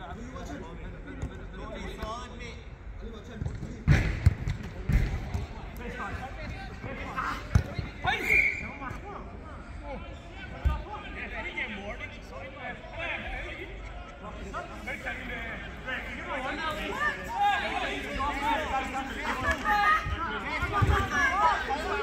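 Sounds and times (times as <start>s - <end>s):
people laughing: 13.4s - 14.8s
players shouting: 15.6s - 22.0s.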